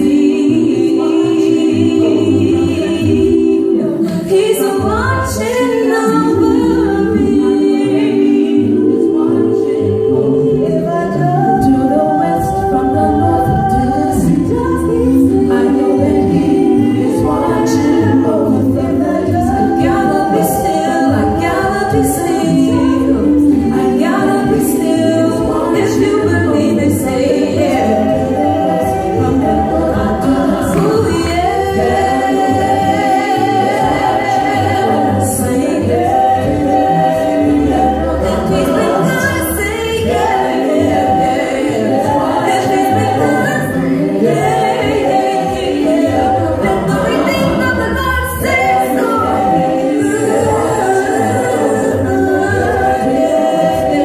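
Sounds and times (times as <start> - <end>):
vocal group singing in harmony: 0.0 - 54.0.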